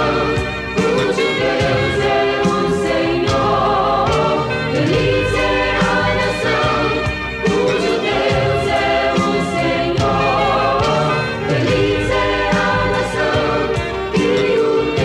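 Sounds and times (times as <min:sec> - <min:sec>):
choir voices: 0:00.0 - 0:15.0
instrumental accompaniment with beat: 0:00.0 - 0:15.0.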